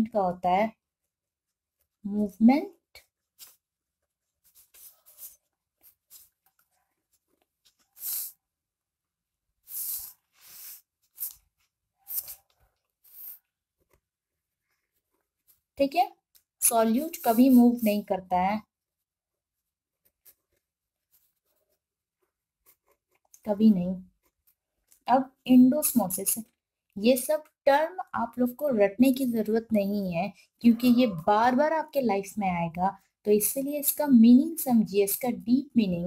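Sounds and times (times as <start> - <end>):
pen scratching on paper: 3.4 - 8.4, 9.6 - 16.0, 16.7 - 18.2, 19.4 - 24.6.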